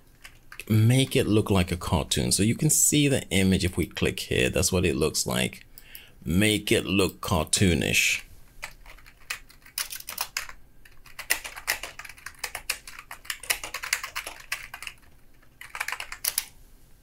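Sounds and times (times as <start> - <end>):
computer keyboard typing: 0.1 - 0.7, 8.6 - 16.5.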